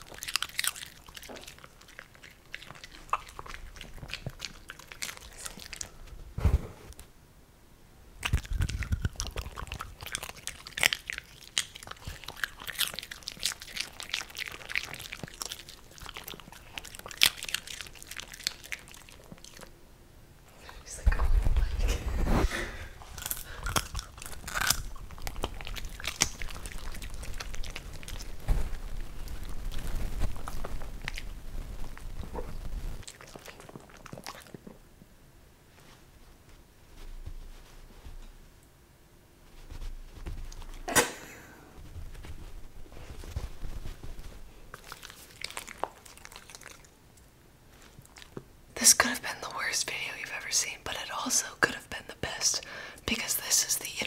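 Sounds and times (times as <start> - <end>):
dogs chewing popcorn: 0.0 - 6.1, 8.2 - 19.7, 23.0 - 34.9, 41.8 - 49.0.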